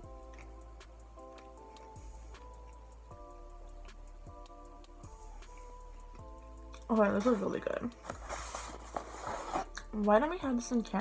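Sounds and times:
chewing fries: 0:00.0 - 0:06.9.

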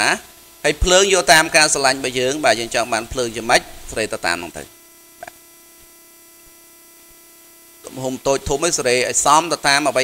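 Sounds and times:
man talking: 0:00.0 - 0:04.7, 0:07.8 - 0:10.0
steady electrical hum: 0:00.0 - 0:10.0.

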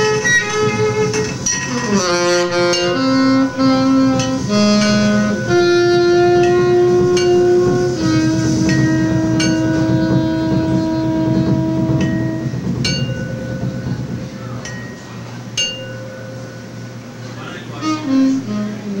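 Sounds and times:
saxophone holding long note: 0:00.0 - 0:14.2, 0:17.3 - 0:19.0
metallic ringing strikes: 0:00.0 - 0:18.6
rolling drums: 0:00.0 - 0:19.0.

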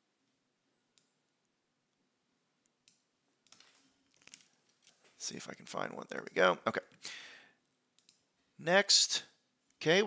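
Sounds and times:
computer mouse clicks: 0:00.9 - 0:01.2, 0:02.6 - 0:05.0, 0:07.9 - 0:08.3.

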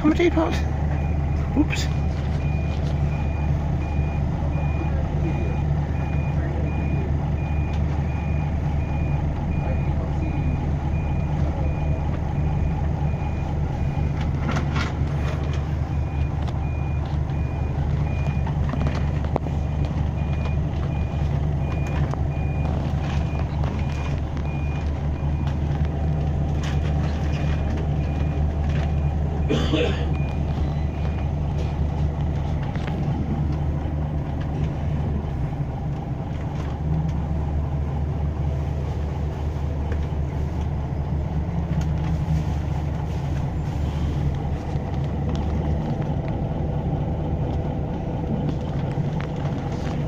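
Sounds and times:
bus engine running: 0:00.0 - 0:50.0
reversing alarm beeps: 0:00.9 - 0:14.2, 0:26.6 - 0:29.2.

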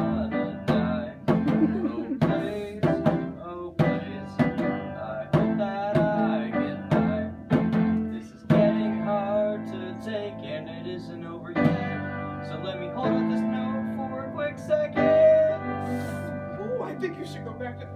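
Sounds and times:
piano playing chords: 0:00.0 - 0:17.9.

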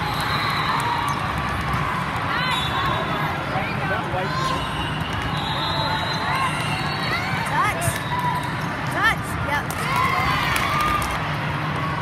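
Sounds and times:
players' voices: 0:02.2 - 0:05.0.

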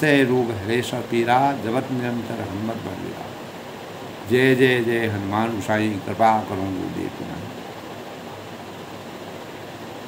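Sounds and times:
ceiling fan running: 0:00.0 - 0:10.0.

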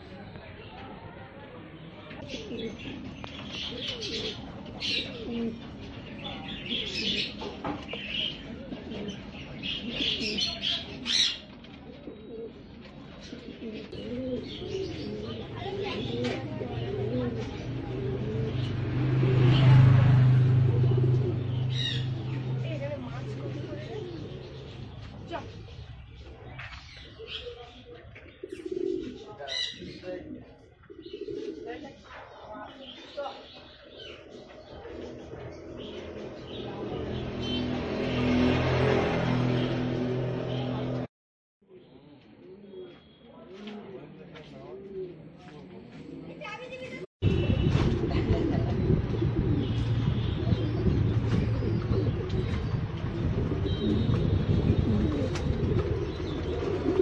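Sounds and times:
pigeons cooing: 0:02.2 - 0:40.5, 0:44.6 - 0:46.4, 0:47.4 - 0:57.0.

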